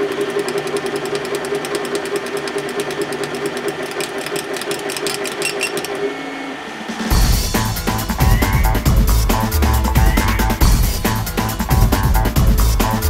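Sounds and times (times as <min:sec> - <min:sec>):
fast clicks of engraver head: 0:00.0 - 0:06.0.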